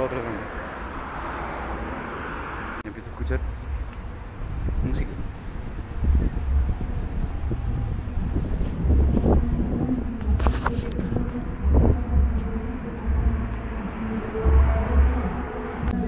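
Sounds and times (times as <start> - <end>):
street ambience: 0.0 - 16.0
faint music: 2.9 - 16.0.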